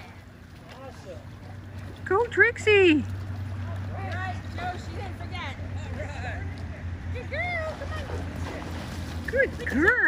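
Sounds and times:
water sloshing: 0.0s - 10.0s.

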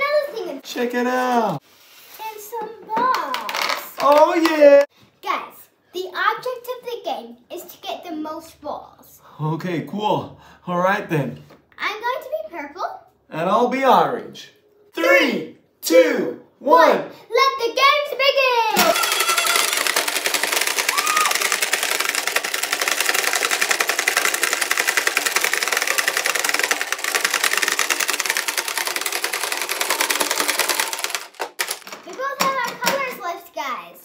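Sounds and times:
plastic balls rattling: 3.1s - 4.9s, 18.8s - 33.2s.

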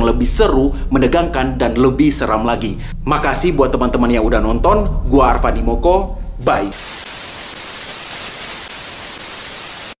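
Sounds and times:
television static hiss: 6.7s - 10.0s.

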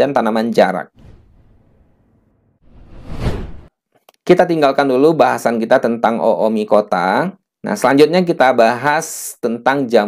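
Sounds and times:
whoosh sound effect: 1.0s - 3.7s.

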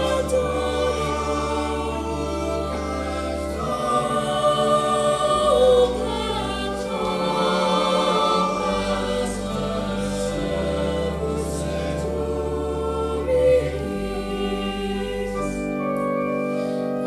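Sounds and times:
choir singing sacred piece: 0.0s - 17.0s
long low held notes: 0.0s - 17.0s.

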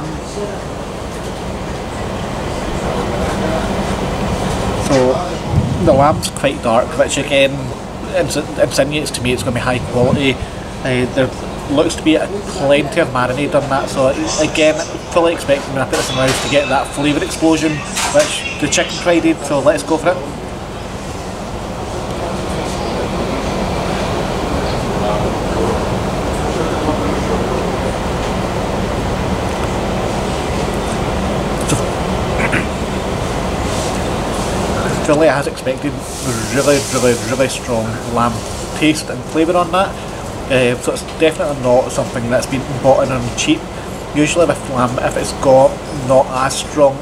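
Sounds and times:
mechanical rumble with low hum: 0.0s - 47.0s.

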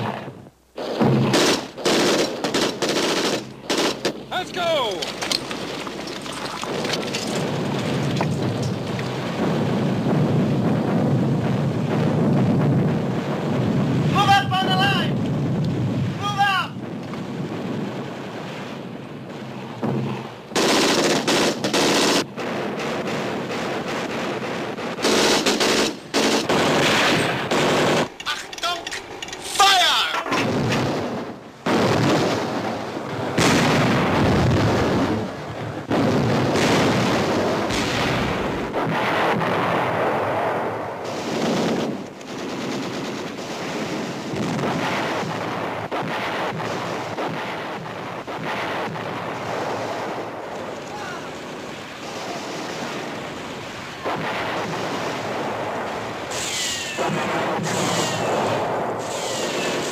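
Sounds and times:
artillery explosions: 0.0s - 59.9s
rifle shots: 0.8s - 9.4s, 20.6s - 29.2s
machine-gun fire: 0.8s - 9.7s, 20.5s - 28.2s, 41.0s - 50.3s, 51.3s - 58.8s.

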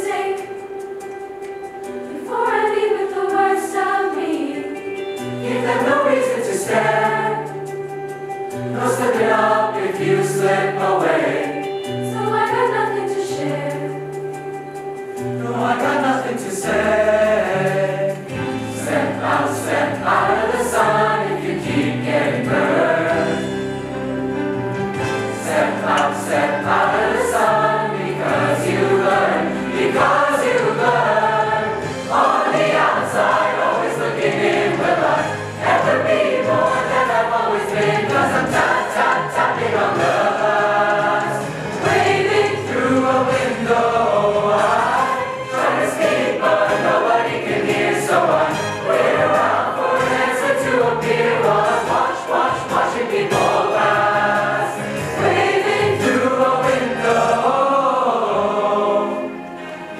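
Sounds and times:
mixed choir singing: 0.0s - 0.8s, 2.0s - 7.8s, 8.6s - 14.2s, 15.2s - 59.9s.

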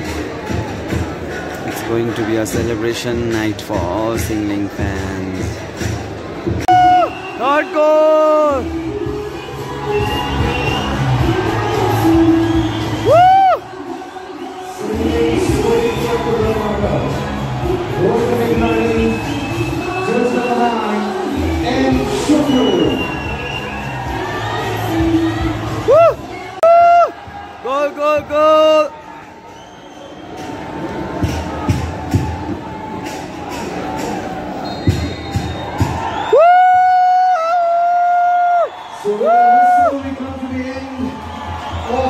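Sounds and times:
stadium crowd cheering: 6.6s - 42.0s.

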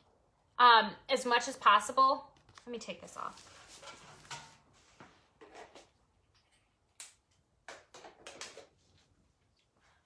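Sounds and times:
scrapes and rustles: 2.5s - 6.0s.

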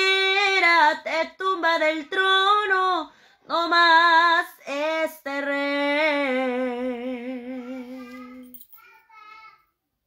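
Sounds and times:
woman singing unaccompanied: 0.0s - 8.5s.

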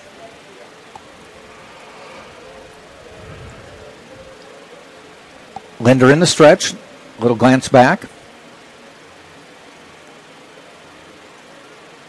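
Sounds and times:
murmur of voices: 0.0s - 7.2s
thin steady hum: 0.0s - 12.0s.

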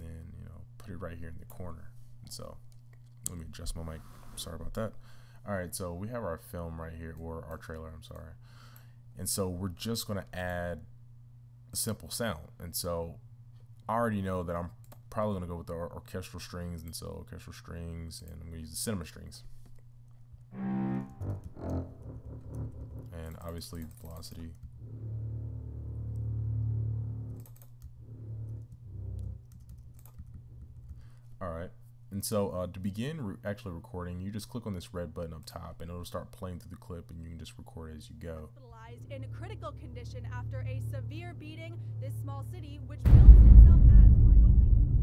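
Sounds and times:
film trailer soundtrack: 20.6s - 23.3s, 24.8s - 27.4s, 43.0s - 45.0s
short low string notes: 20.6s - 23.5s.

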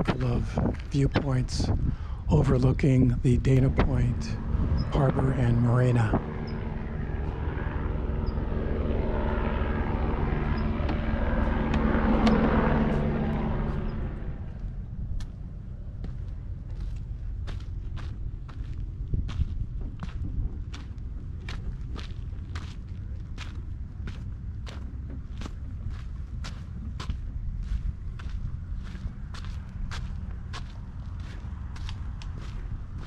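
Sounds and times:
footsteps on steps and dirt: 0.0s - 2.0s, 16.0s - 33.0s
passing engine drone: 0.0s - 33.0s.

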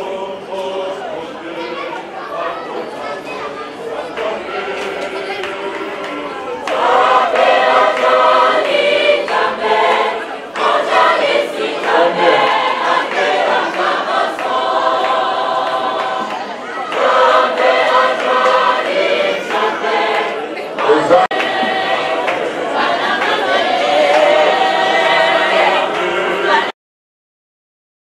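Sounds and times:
group singing a hymn: 0.0s - 26.8s.

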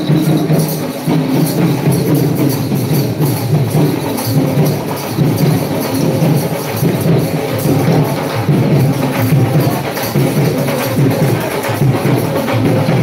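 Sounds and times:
jingling hand percussion: 0.0s - 13.0s.

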